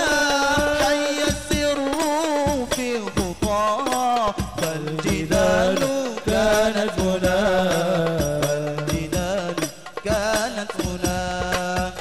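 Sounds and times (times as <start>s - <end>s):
man singing devotional song: 0.0s - 12.0s.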